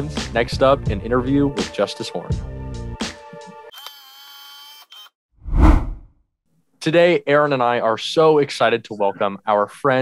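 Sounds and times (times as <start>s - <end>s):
deep whoosh with low boom: 5.4s - 6.0s.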